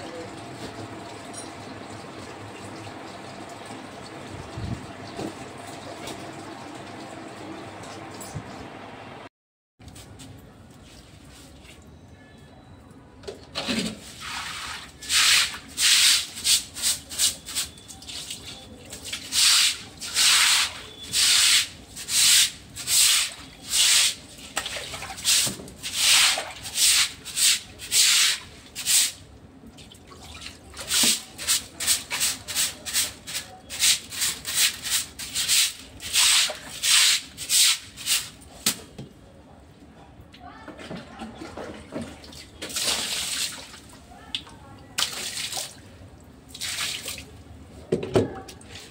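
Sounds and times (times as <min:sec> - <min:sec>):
brush scrubbing wet surface: 0:14.0 - 0:29.2, 0:30.8 - 0:38.5.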